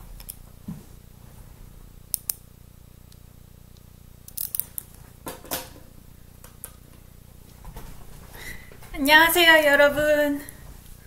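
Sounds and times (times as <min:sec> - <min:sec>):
low steady hum: 0:00.0 - 0:11.0
sharp clicks: 0:02.1 - 0:02.4.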